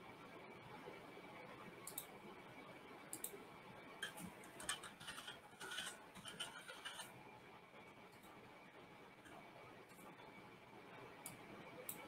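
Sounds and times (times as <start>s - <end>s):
computer mouse clicks: 1.8s - 2.2s, 3.1s - 3.4s, 11.2s - 12.0s.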